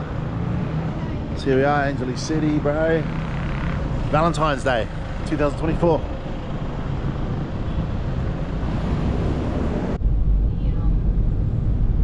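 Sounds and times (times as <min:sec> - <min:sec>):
street traffic noise: 0:00.0 - 0:12.0
car engine and road noise inside: 0:05.6 - 0:12.0.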